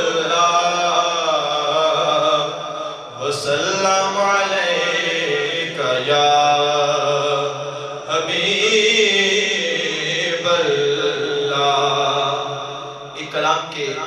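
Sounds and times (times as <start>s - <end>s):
man chanting into microphone: 0.0s - 14.0s.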